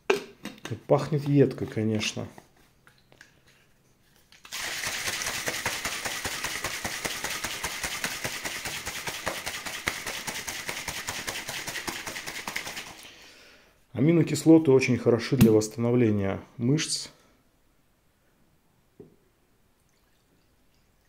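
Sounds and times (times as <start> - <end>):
shaker bottle sloshing rattle: 4.2 - 13.1.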